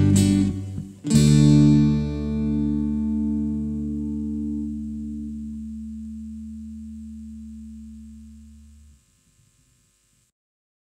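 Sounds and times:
guitar and bass chord ringing: 0.0s - 9.0s
faint hiss: 0.0s - 10.3s.

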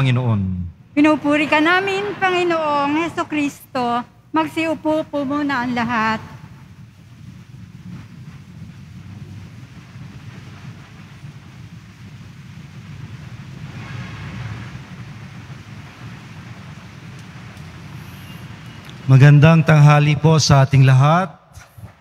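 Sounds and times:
low steady room rumble: 0.0s - 22.0s
soft hiss: 0.0s - 22.0s.

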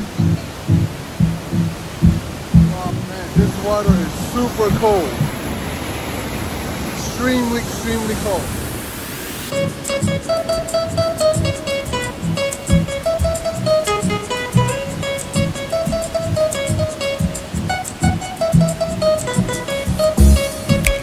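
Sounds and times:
plucked string music over beat: 0.0s - 5.3s, 9.5s - 21.0s
waterfall rushing: 0.0s - 21.0s.

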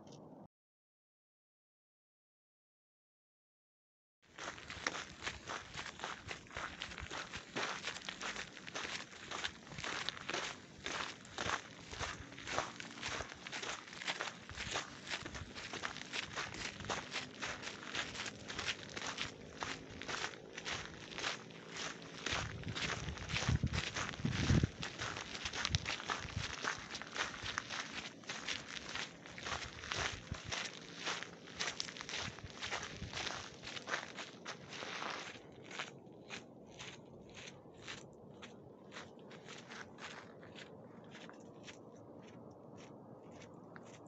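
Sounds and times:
footsteps crunching on gravel: 4.3s - 44.0s.

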